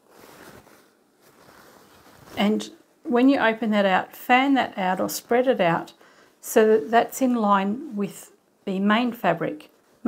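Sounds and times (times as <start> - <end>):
faint fabric rustling: 0.0 - 10.0.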